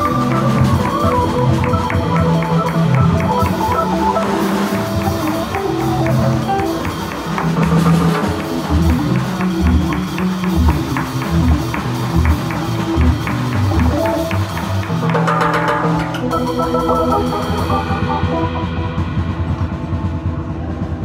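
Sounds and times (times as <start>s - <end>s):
jazz organ trio playing swing: 0.0s - 19.0s.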